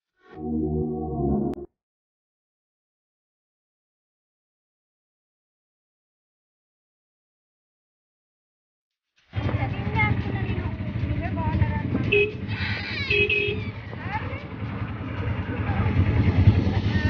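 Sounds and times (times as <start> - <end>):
auto-rickshaw engine rumbling: 9.3 - 17.0
people talking: 9.4 - 17.0.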